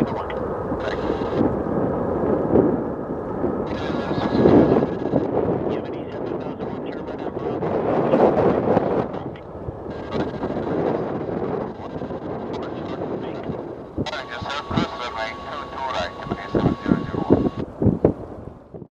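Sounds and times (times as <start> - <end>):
jet engines running loud: 0.0 - 18.4
wind buffeting microphone: 0.0 - 18.9.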